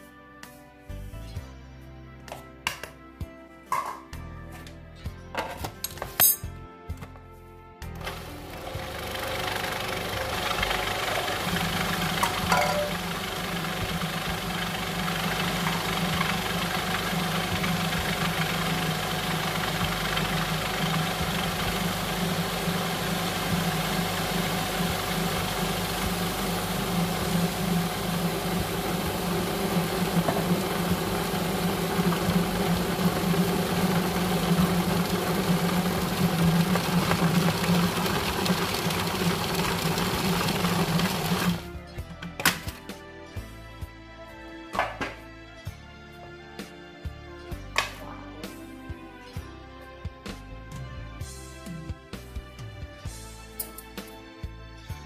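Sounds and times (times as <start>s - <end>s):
food processor grinding: 8.0s - 41.7s.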